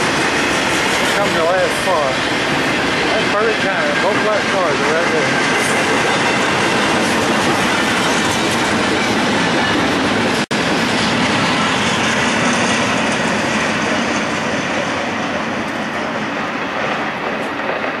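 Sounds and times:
freight train wheels on track: 0:00.0 - 0:18.0.

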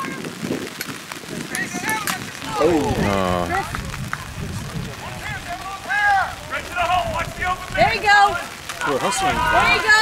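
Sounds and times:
faint voices calling out: 0:01.9 - 0:10.0.

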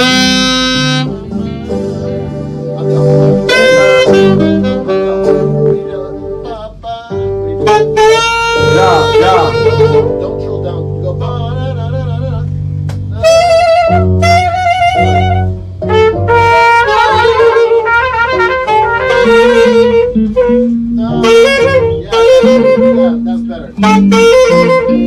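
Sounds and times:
saxophone melody: 0:00.0 - 0:12.4, 0:13.1 - 0:25.0
keyboard: 0:00.0 - 0:25.0
sustained bass notes: 0:00.0 - 0:25.0.

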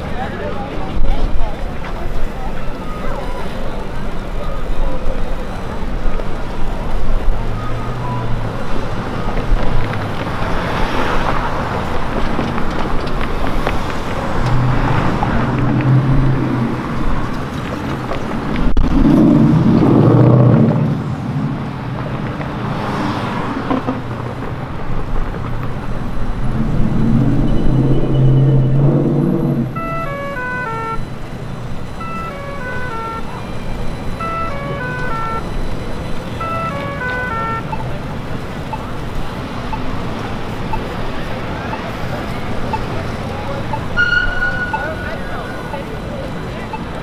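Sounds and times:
cars driving past: 0:00.0 - 0:47.0
roadway hum: 0:00.0 - 0:47.0
falling electronic tones: 0:26.4 - 0:38.0, 0:43.7 - 0:45.9.

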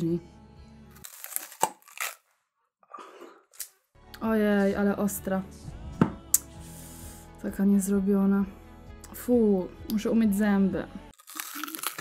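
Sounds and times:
biting into raw onion: 0:01.0 - 0:02.2, 0:11.1 - 0:12.0
crunchy chewing: 0:11.1 - 0:12.0.

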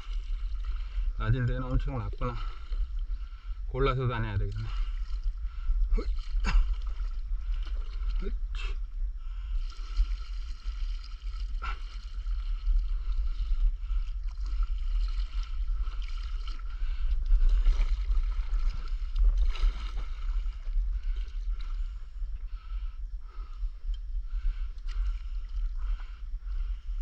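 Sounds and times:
paddle strokes in water: 0:00.0 - 0:03.6, 0:04.2 - 0:27.0
low rumble: 0:00.0 - 0:27.0.

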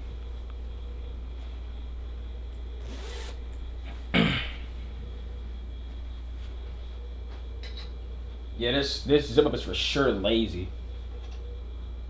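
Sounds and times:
steady low hum: 0:00.0 - 0:12.0
zipper rasp: 0:02.8 - 0:03.4.

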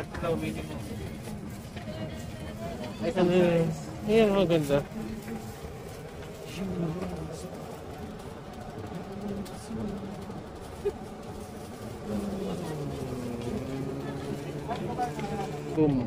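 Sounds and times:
indistinct voices talking: 0:00.0 - 0:16.0.

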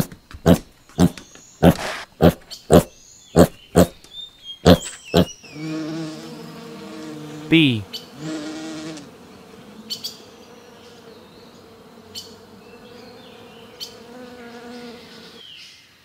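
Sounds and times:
honeybee buzzing: 0:04.7 - 0:15.4.

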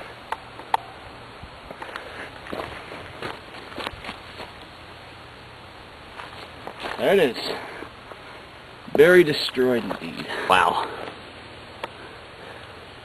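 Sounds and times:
footsteps through leafy ground cover: 0:01.7 - 0:04.7, 0:06.1 - 0:08.3.

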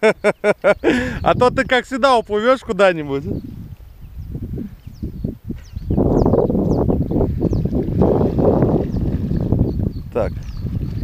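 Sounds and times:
rustling and buffeting at microphone: 0:00.0 - 0:11.0.

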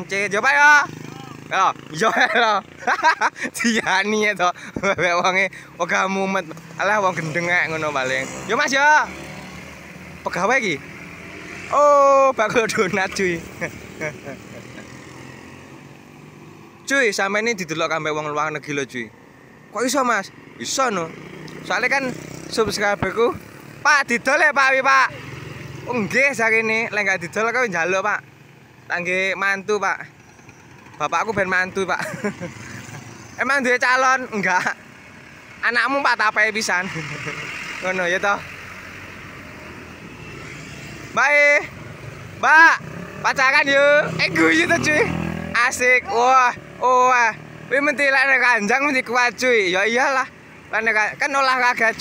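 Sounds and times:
man talking: 0:00.0 - 0:09.2, 0:10.2 - 0:10.8, 0:11.7 - 0:14.8, 0:16.9 - 0:19.1, 0:19.7 - 0:28.2, 0:28.9 - 0:30.1, 0:31.0 - 0:32.3, 0:33.4 - 0:34.8, 0:35.6 - 0:38.5, 0:41.1 - 0:41.8, 0:42.4 - 0:52.0
car passing: 0:00.0 - 0:52.0
motorbike engines humming: 0:00.0 - 0:52.0.

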